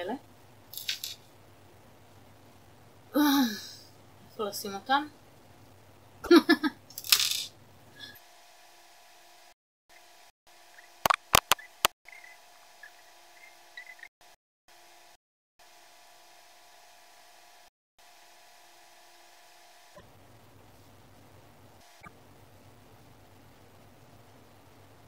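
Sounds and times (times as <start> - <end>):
faint steady hum: 0.0 - 14.1, 15.7 - 25.0
earrings clicking: 0.8 - 1.2.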